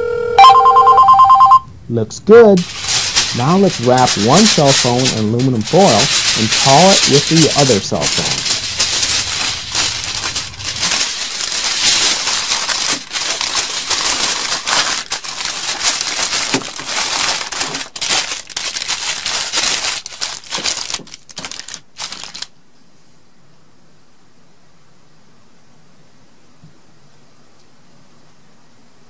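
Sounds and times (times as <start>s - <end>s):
aluminum foil crinkling: 2.6s - 22.5s.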